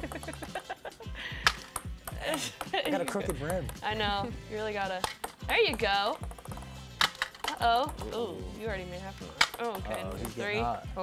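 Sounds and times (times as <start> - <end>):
ping-pong ball clicking: 0.0 - 0.6, 1.5 - 4.0, 4.9 - 8.3, 9.4 - 10.6
background music with bass line: 0.0 - 11.0.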